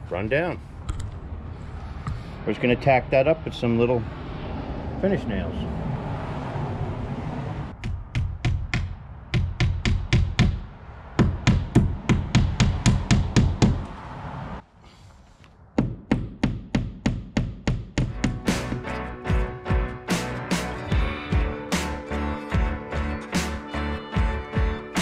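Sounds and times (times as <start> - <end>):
music with fast percussive beat: 17.9 - 21.9.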